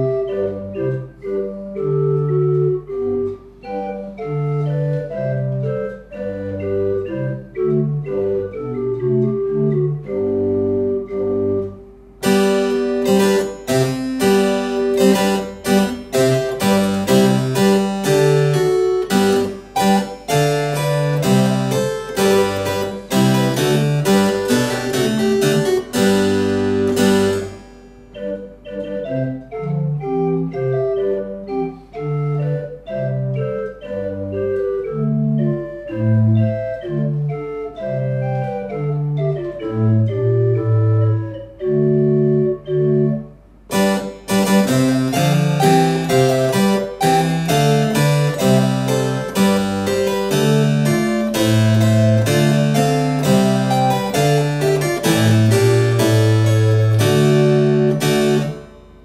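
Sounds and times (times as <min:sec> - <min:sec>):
organ pipes playing: 0:00.0 - 0:59.0
harpsichord plucked strings: 0:12.2 - 0:31.5, 0:42.4 - 0:59.0.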